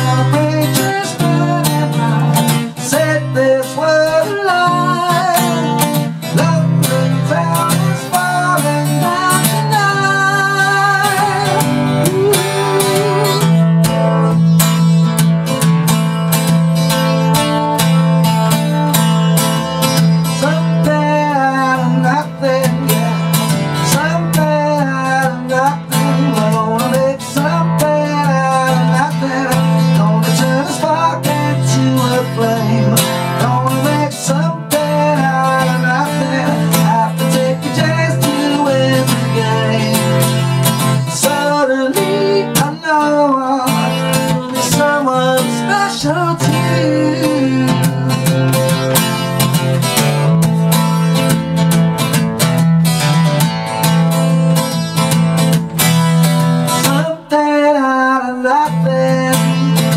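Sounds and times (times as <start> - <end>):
man singing: 0.0 - 15.6, 17.3 - 51.3, 56.6 - 59.9
acoustic guitar strumming chords: 0.0 - 59.9.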